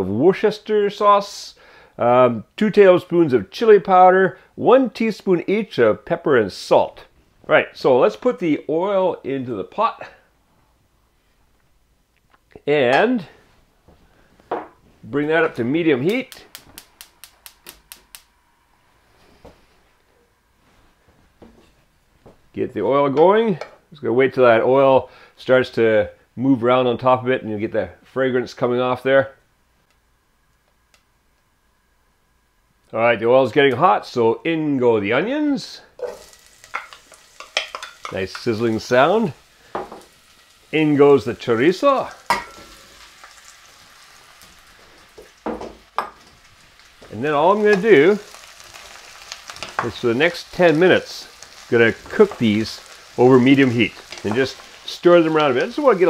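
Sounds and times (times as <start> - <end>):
onions sizzling in oil: 36.0 - 56.0.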